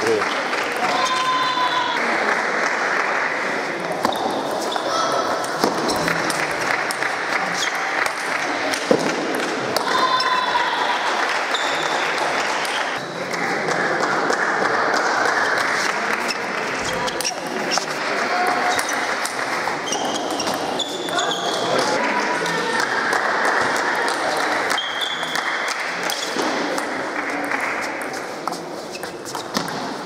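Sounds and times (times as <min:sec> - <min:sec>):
chatter of spectators: 0:00.0 - 0:30.0
shoes squeaking on floor: 0:11.5 - 0:12.1, 0:19.8 - 0:22.0, 0:28.5 - 0:29.7.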